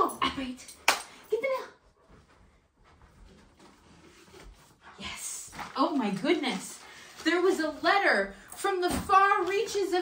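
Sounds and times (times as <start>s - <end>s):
soft rustling: 1.8s - 10.0s.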